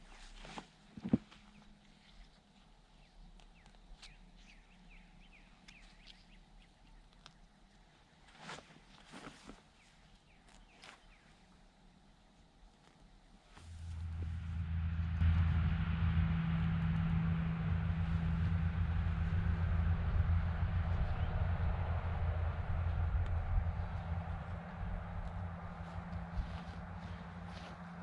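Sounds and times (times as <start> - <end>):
engine humming steadily: 13.6 - 28.0.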